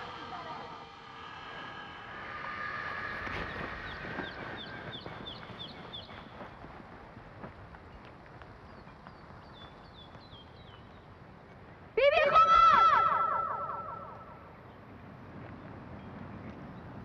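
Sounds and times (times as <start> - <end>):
loud wavering animal cry: 0.0 - 4.3, 12.2 - 14.5.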